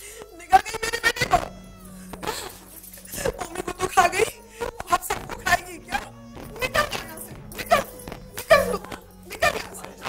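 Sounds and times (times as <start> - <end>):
woman wailing and sobbing: 0.0 - 10.0.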